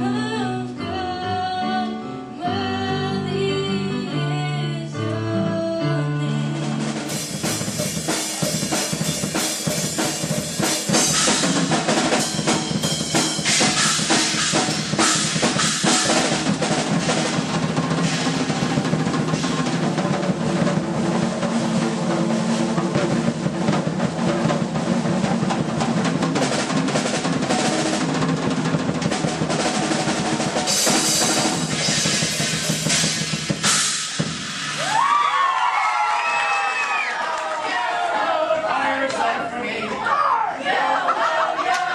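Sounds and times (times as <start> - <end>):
fast drum solo: 6.6 - 35.5
cymbal crashes: 30.6 - 35.1.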